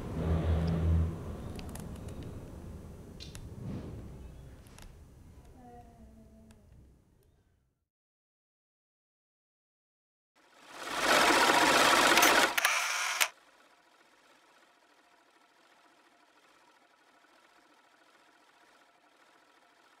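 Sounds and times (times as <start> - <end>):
mechanical whirring rattle: 10.4 - 20.0
mechanical clicks: 12.0 - 13.3.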